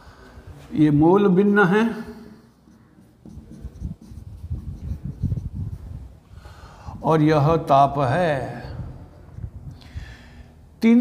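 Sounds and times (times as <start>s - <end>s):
marker writing on whiteboard: 2.4s - 6.0s.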